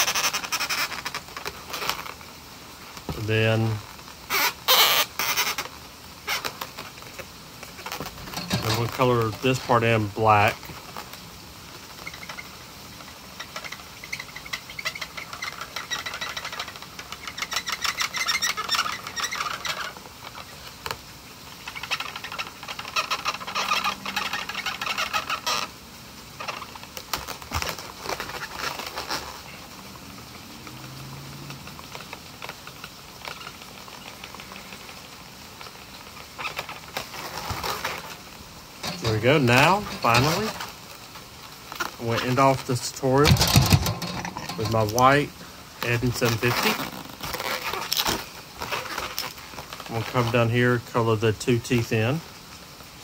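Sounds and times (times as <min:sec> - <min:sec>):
marker squeaking on balloon: 0:00.0 - 0:02.2, 0:04.3 - 0:06.7, 0:13.1 - 0:20.6, 0:21.6 - 0:25.7, 0:36.3 - 0:38.2, 0:46.1 - 0:49.3.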